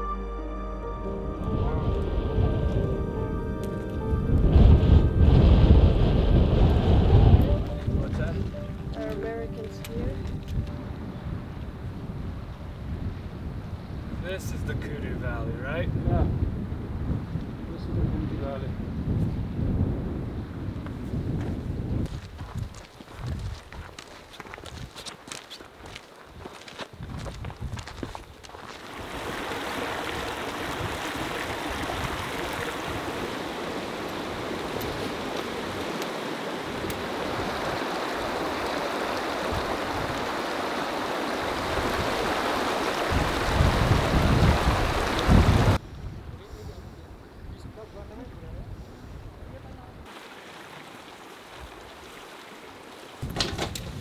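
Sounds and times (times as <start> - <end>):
wind buffeting microphone: 1.4 - 25.1, 25.8 - 50.1, 53.2 - 54.0
stream flowing over boulders: 28.5 - 45.8, 50.1 - 53.3.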